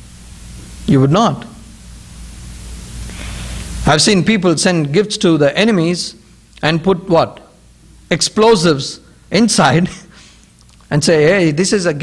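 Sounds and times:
microphone hiss: 0.0s - 12.0s
man speaking: 0.9s - 1.6s, 3.9s - 7.5s, 8.1s - 10.1s, 10.9s - 12.0s.

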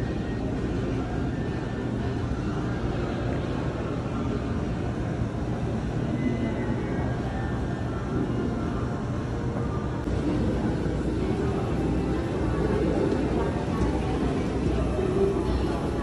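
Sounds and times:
distant murmur of voices: 0.0s - 16.0s.

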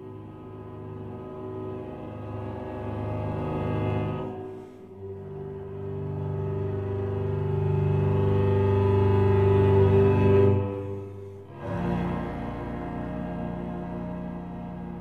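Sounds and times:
cello and double bass bowing: 0.0s - 15.0s.

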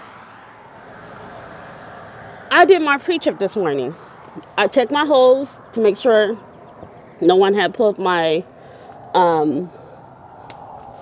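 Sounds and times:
faint vehicle rumble: 0.0s - 11.0s.

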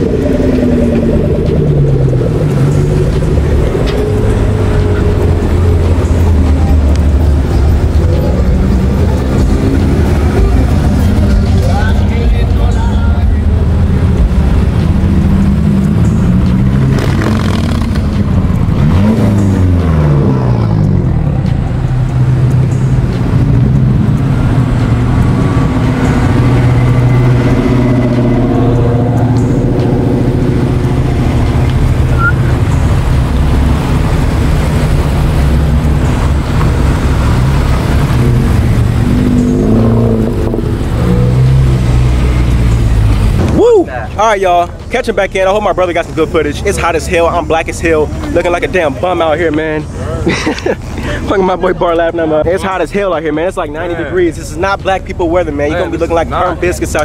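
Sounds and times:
rising and falling sweep: 0.0s - 44.2s
cars driving past: 0.0s - 57.0s
engines revving: 0.0s - 57.0s.

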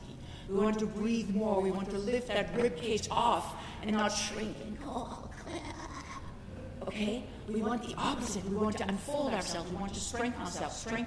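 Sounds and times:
low steady hum: 0.0s - 11.0s
woman speaking: 0.5s - 6.2s, 6.8s - 11.0s.

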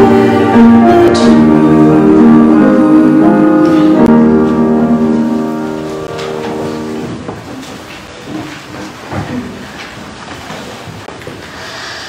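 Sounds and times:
keyboard chord held: 0.0s - 7.2s
congregation rustling: 0.0s - 11.4s.

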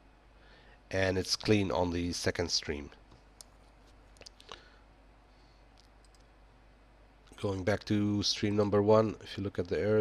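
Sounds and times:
faint computer mouse clicks: 5.8s - 6.4s.

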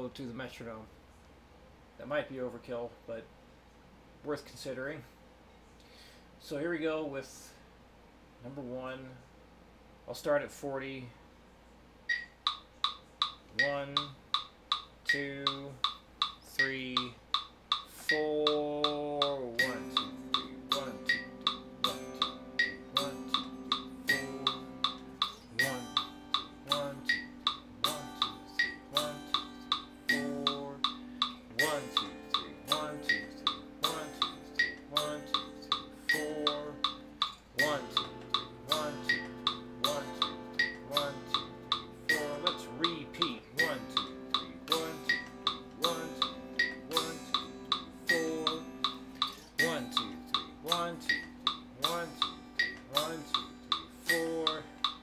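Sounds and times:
metronome clicking: 12.1s - 55.0s
electric guitar chords: 18.0s - 55.0s.

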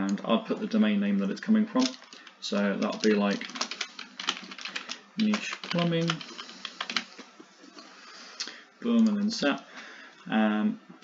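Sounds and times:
typing on computer keyboard: 2.8s - 7.1s.

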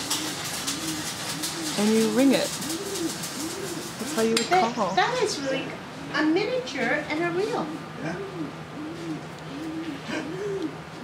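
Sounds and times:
pigeon cooing: 0.0s - 11.0s.

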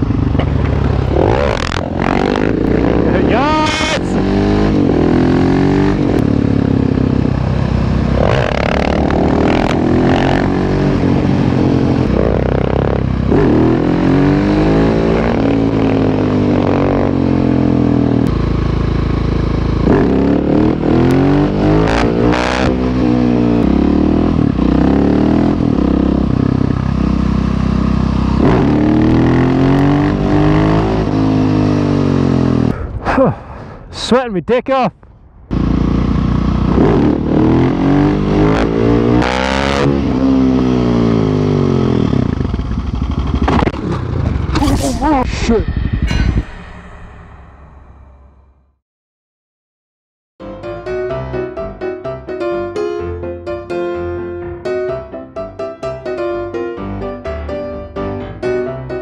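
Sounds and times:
motorcycle engine accelerating: 0.0s - 33.4s, 35.2s - 48.5s.

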